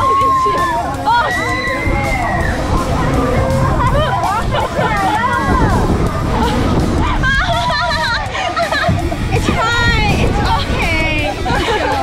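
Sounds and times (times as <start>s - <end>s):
music: 0.0s - 12.0s
riders screaming and laughing: 0.0s - 12.0s.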